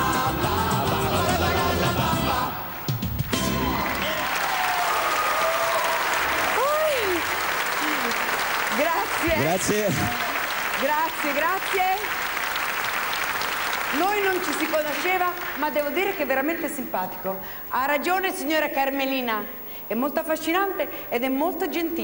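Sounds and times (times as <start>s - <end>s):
audience applauding: 3.2s - 16.1s
voices speaking: 8.8s - 10.4s.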